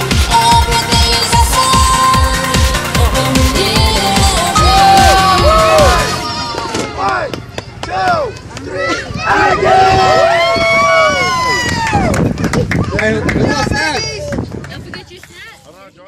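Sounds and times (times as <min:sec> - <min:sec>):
pop song with steady beat: 0:00.0 - 0:06.5
adults' voices: 0:00.0 - 0:16.0
young children shouting and cheering: 0:03.2 - 0:14.3.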